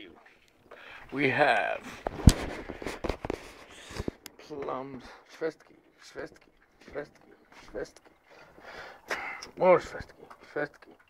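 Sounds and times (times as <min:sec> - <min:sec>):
camera handling rubbing: 0:02.0 - 0:04.2.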